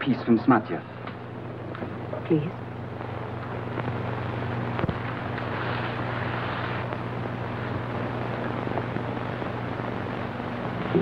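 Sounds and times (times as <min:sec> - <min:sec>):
film soundtrack hum and hiss: 0:00.0 - 0:11.0.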